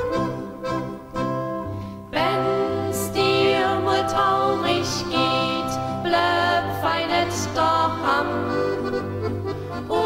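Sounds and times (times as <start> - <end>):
accordion: 0.0 - 10.0
bass notes: 0.0 - 10.0
guitar: 0.0 - 10.0
person singing: 2.1 - 9.0.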